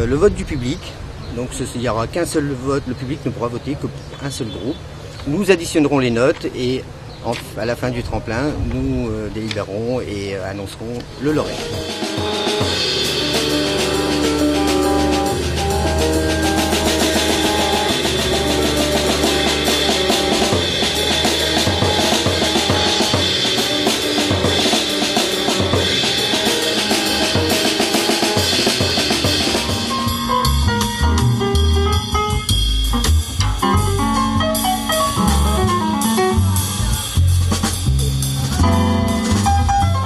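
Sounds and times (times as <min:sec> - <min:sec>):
drum kit with cymbals: 0:11.1 - 0:40.0
double bass bowed notes: 0:11.2 - 0:40.0
piano: 0:11.4 - 0:37.1, 0:37.7 - 0:40.0.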